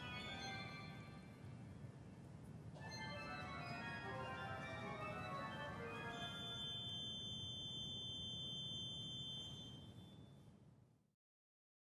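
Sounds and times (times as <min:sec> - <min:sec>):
low hum of hall noise: 0:00.0 - 0:11.0.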